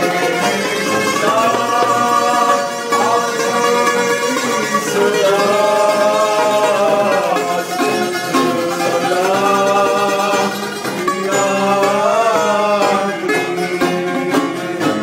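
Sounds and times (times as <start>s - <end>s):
man singing: 0.0s - 15.0s.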